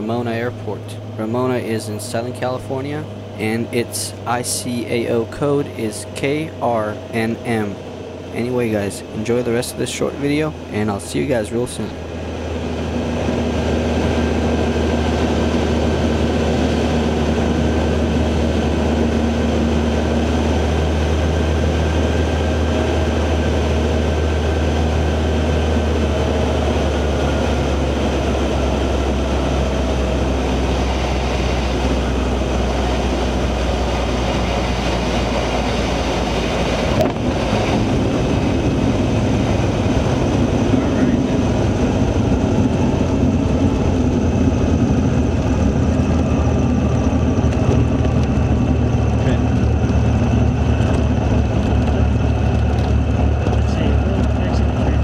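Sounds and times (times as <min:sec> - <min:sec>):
propeller plane engine running: 0:00.0 - 0:55.0
tyres rumbling on runway: 0:00.0 - 0:55.0.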